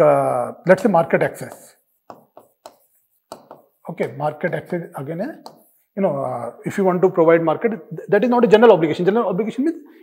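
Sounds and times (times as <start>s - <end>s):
marker writing on whiteboard: 0.7s - 6.1s.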